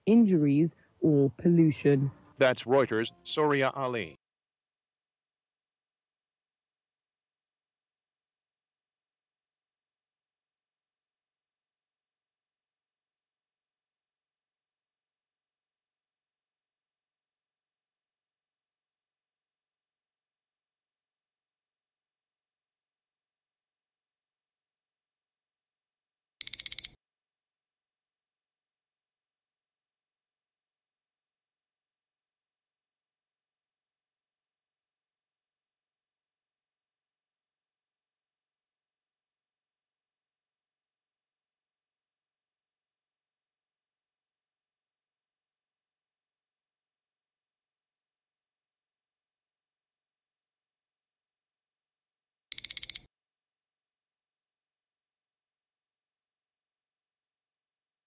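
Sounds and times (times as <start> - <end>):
electronic timer alarm ringing: 26.4 - 27.0, 52.5 - 53.1.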